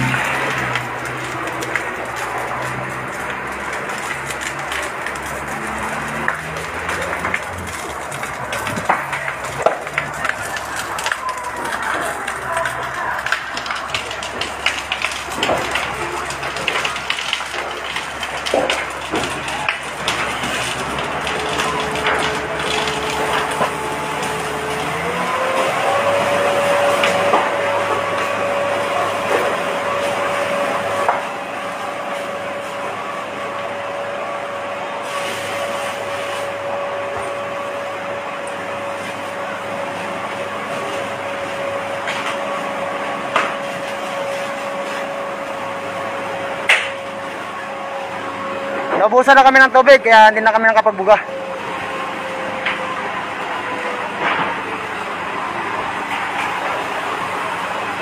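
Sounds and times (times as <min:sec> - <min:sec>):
fire truck pump engine hum: 0:00.0 - 0:58.0
noisy background: 0:00.0 - 0:58.0.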